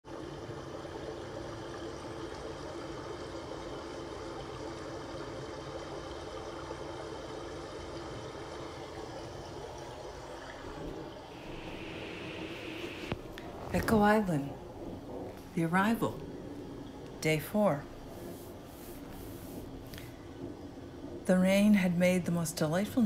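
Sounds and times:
trickling running water: 0.0 - 23.0.

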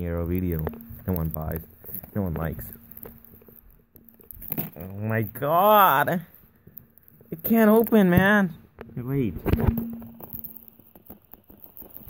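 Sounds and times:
soft clicks and scrapes: 0.2 - 4.8, 6.2 - 8.0.

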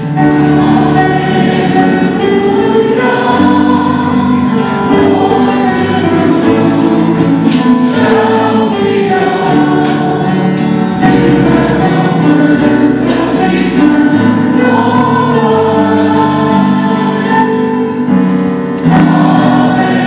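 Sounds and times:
congregation singing: 0.0 - 20.0.

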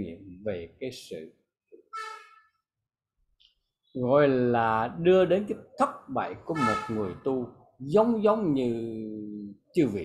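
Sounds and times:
man talking over video call: 0.0 - 1.4, 3.9 - 10.0.

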